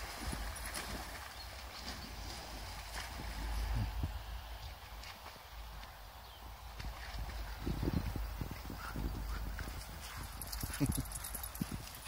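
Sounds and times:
wind rumble on microphone: 1.8 - 5.0, 5.6 - 12.0
dog soft rhythmic sounds: 9.4 - 12.0.

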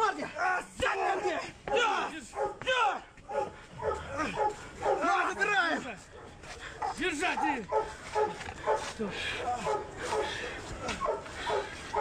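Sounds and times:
men shouting: 0.0 - 6.0
dog barking and yelping: 1.0 - 2.6, 3.3 - 5.4, 6.1 - 12.0.

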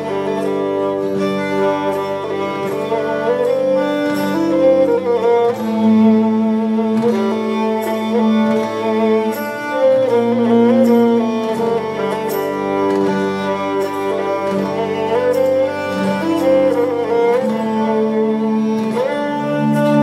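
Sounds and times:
higher held bowed tones: 0.0 - 20.0
low bowed string notes: 0.0 - 20.0.

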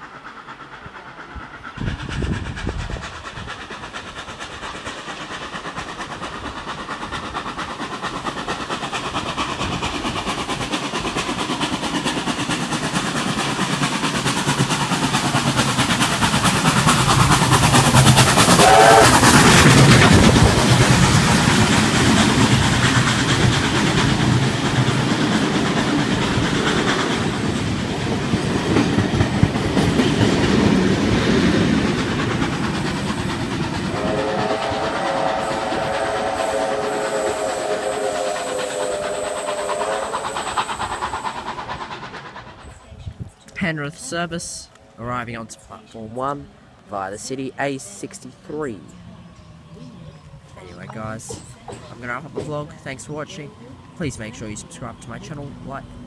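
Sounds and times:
train wheels clattering on rails: 0.0 - 43.6, 50.2 - 56.0
train whistle bending pitch: 18.6 - 19.2, 33.9 - 40.4
chord-like train horn: 33.9 - 40.4.

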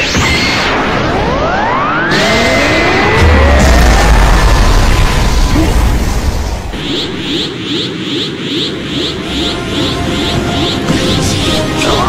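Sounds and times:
pulsing energy hum: 0.6 - 12.0.

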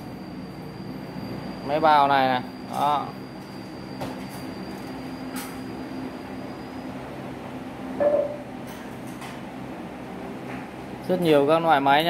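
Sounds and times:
mechanical hum with held tones: 0.0 - 12.0
brief loud sound: 8.0 - 8.5.

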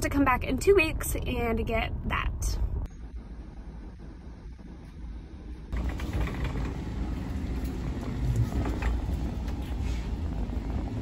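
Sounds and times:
low store rumble: 0.0 - 11.0
shopping cart rolling: 5.8 - 11.0.

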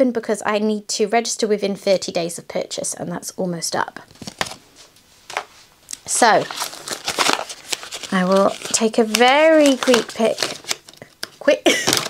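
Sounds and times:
paper and foil taps and rustles: 4.1 - 4.6, 6.2 - 12.0.

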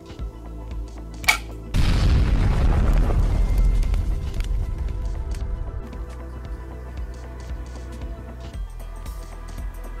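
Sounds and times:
background music: 0.0 - 10.0
sharp snap: 1.2 - 1.6
explosion boom: 1.7 - 4.9.

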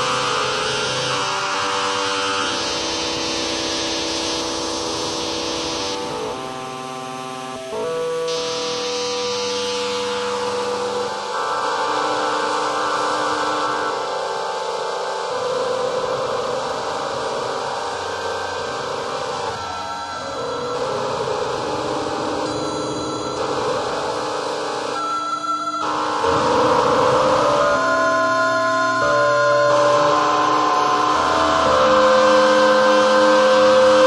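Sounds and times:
atonal electronic held tones: 0.0 - 34.0.

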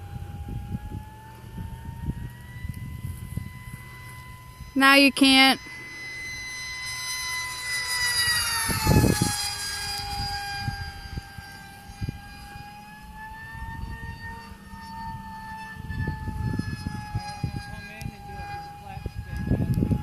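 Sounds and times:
model plane motor whining: 0.0 - 20.0.

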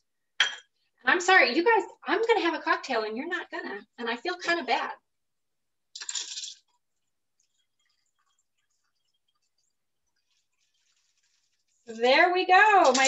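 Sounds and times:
ice rattling in cocktail shaker: 6.0 - 6.8, 7.4 - 13.0
drink pouring into glass: 6.0 - 11.8.

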